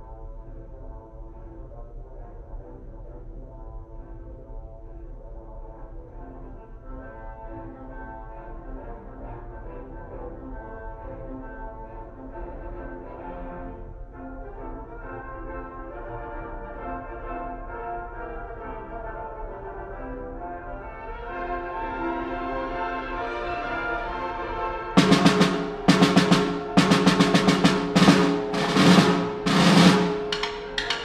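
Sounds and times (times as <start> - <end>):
brass holding sustained chords: 13.2 - 31.0
wind band music: 20.8 - 31.0.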